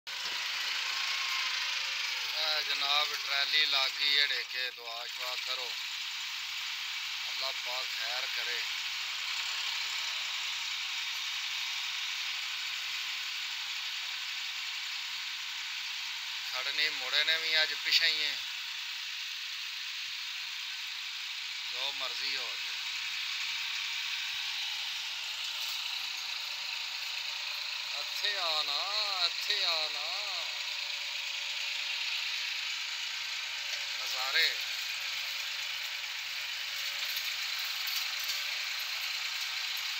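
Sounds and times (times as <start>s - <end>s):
tractor diesel engine running: 0.1s - 39.9s.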